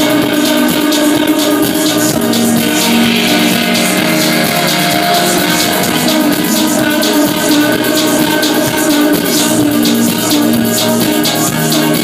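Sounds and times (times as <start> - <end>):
live electronic music: 0.0 - 12.0
sustained synthesizer tones: 0.0 - 12.0.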